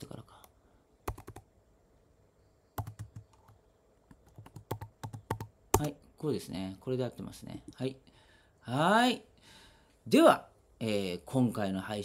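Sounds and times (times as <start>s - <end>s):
keyboard keystrokes: 2.8s - 5.9s.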